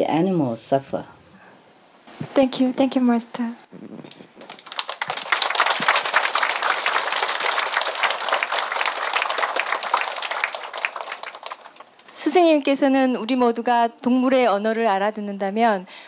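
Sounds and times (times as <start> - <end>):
audience applauding: 4.4 - 12.1.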